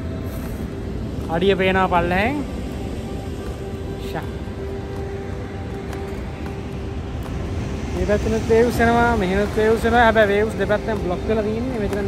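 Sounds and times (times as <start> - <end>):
ocean surf: 0.0 - 12.0
wind: 0.0 - 12.0.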